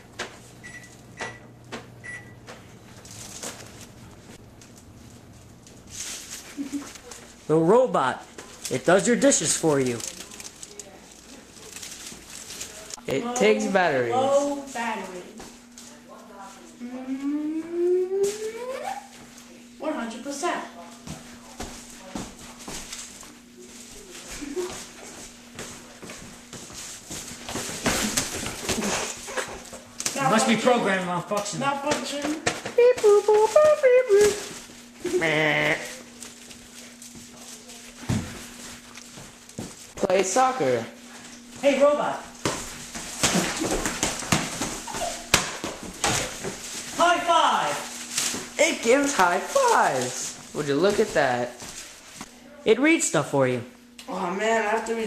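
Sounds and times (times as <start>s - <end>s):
person humming rising tone: 16.8s - 19.1s
ball kicked and bouncing on tiles: 38.0s - 38.4s, 42.4s - 46.6s.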